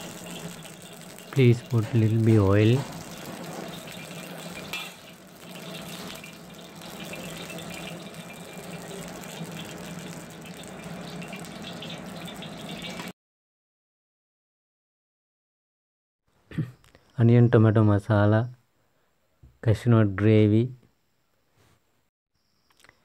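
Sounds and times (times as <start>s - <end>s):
faint crackles of heating oil: 0.0s - 13.1s
gas burner hissing and humming: 0.0s - 13.1s.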